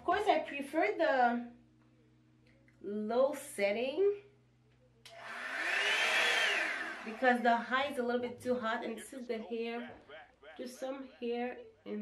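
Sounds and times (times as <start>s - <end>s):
hair dryer fan whine: 5.1s - 7.8s.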